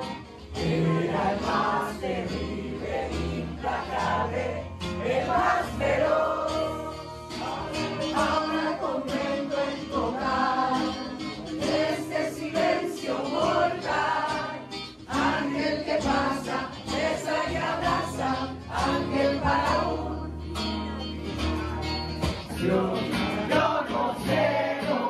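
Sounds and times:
acoustic guitar: 0.0s - 25.0s
people singing: 0.0s - 25.0s.

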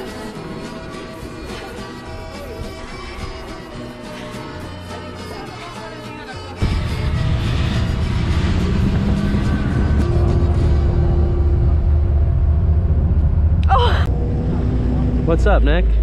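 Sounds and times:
background music: 0.0s - 14.1s
boat engine rumbling: 6.6s - 16.0s
wind: 6.6s - 16.0s.

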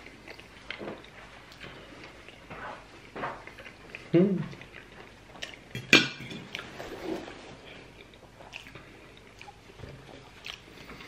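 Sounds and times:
soft chewing: 0.0s - 5.8s, 6.4s - 11.0s.

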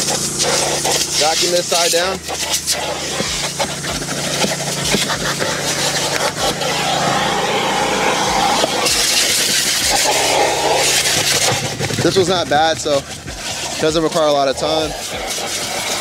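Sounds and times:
vacuum cleaner motor hum: 0.0s - 16.0s
vacuum suction hiss: 0.0s - 16.0s
vacuum tool knocking: 3.1s - 7.2s, 8.2s - 16.0s.

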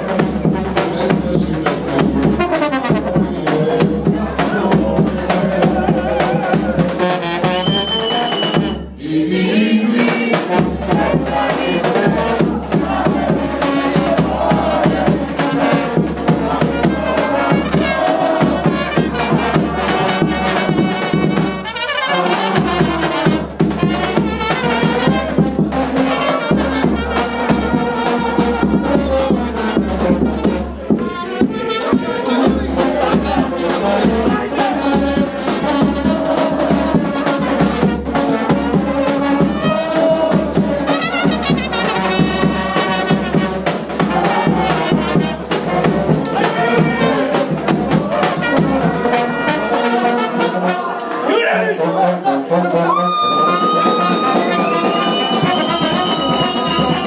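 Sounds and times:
bass drum and cymbal beat: 0.0s - 9.0s, 9.9s - 50.4s, 53.2s - 57.0s
trumpets and horns playing: 0.0s - 57.0s.

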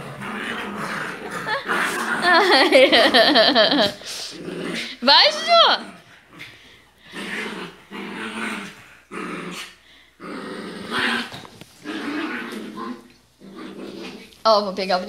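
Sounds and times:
small dog growling: 0.0s - 14.4s.

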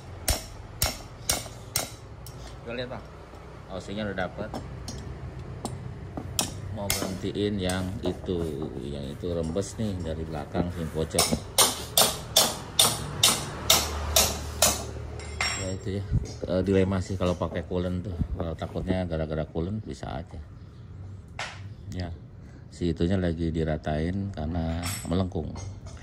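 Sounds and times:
sharp ringing knocks: 0.0s - 2.1s, 11.2s - 15.8s
spanner striking metal: 0.0s - 2.5s, 4.5s - 7.8s, 11.2s - 16.0s
low steady hum: 0.0s - 23.4s.

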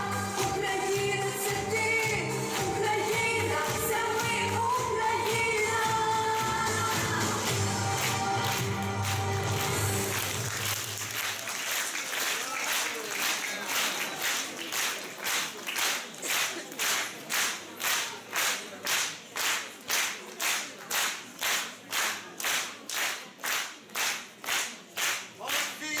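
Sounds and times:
audience clapping in unison: 0.0s - 26.0s.

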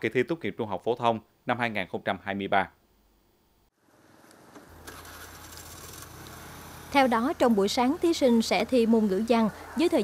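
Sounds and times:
distant traffic hum: 4.0s - 10.0s.

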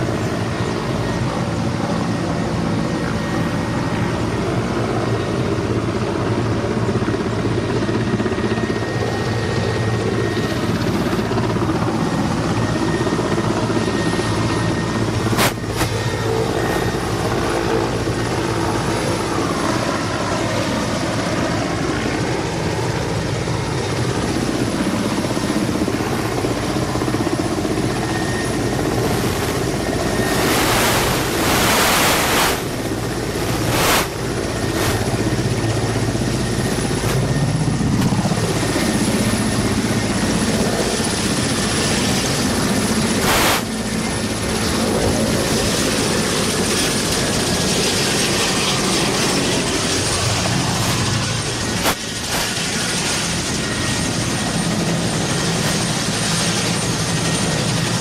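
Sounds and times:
helicopter rotor chop: 0.0s - 58.0s
turbine hum: 0.0s - 58.0s
high whine: 8.2s - 19.8s, 24.4s - 57.8s
wind noise on microphone: 12.6s - 21.0s, 23.9s - 58.0s.

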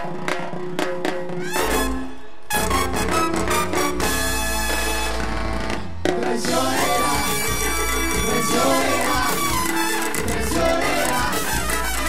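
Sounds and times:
live cumbia band playing: 0.0s - 12.0s
person singing: 6.1s - 9.7s.

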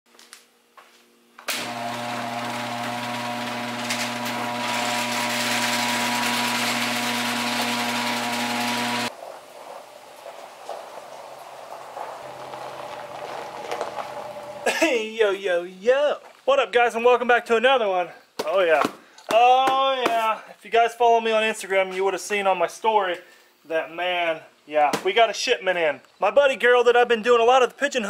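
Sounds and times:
garage door opener motor hum: 1.5s - 9.1s, 12.1s - 14.7s.

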